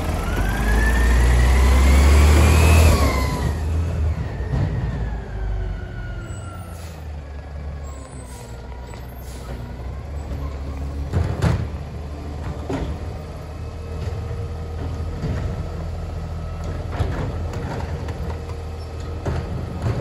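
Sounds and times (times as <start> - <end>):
diesel truck engine accelerating: 0.0 - 20.0
engine whine: 0.0 - 20.0.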